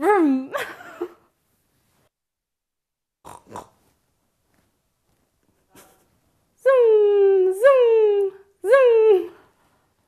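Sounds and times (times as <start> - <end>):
woman snorting like a pig: 3.2 - 3.8.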